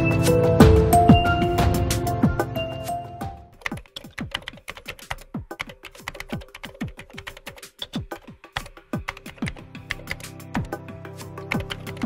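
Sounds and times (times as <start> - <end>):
background music: 0.0 - 12.0
keyboard typing clicks: 3.5 - 10.8, 11.4 - 12.0.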